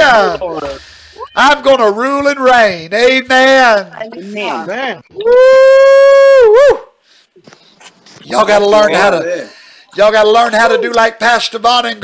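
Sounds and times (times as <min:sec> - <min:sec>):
person shouting woo: 0:05.2 - 0:06.9.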